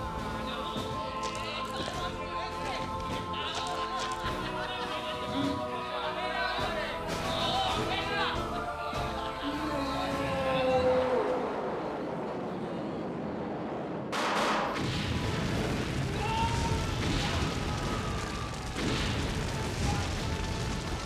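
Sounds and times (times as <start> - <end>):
music: 0.0 - 11.1
explosion: 13.0 - 21.0.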